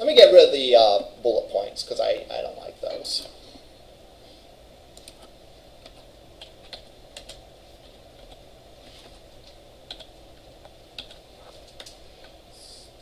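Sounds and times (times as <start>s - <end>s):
typing on computer keyboard: 5.0s - 7.4s, 9.9s - 10.1s, 11.0s - 12.0s.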